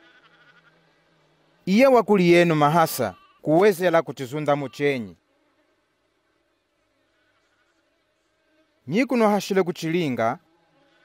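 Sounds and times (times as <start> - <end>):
faint insect buzzing: 0.0 - 11.0.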